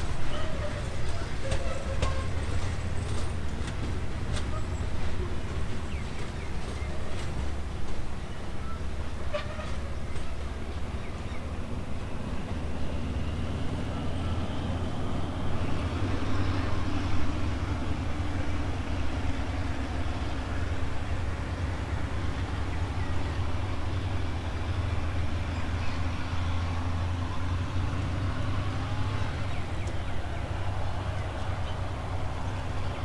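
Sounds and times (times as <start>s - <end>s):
train low rumble: 0.0s - 33.0s.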